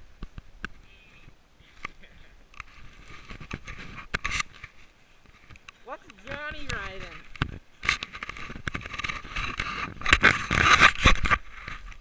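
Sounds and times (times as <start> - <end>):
rustling: 0.0 - 12.0
sharp clicks and scraping: 1.8 - 12.0.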